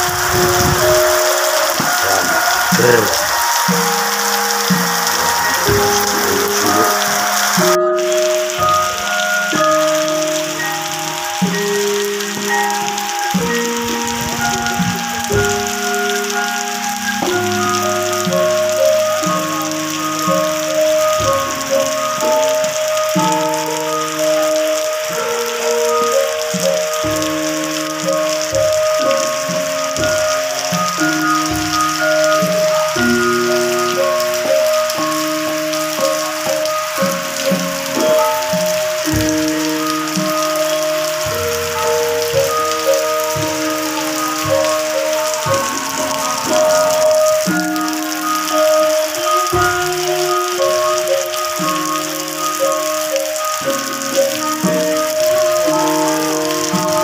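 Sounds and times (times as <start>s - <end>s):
music with held melody notes: 0.0s - 57.0s
rain on foliage: 0.0s - 57.0s.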